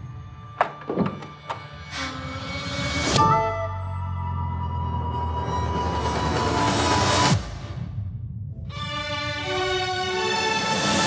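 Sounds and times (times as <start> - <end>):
sustained musical tones: 0.0 - 7.4.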